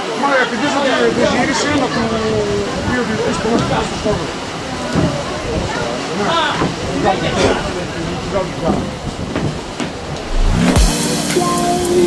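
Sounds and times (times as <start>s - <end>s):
voices calling and talking: 0.0s - 10.2s
rushing background noise: 0.8s - 12.0s.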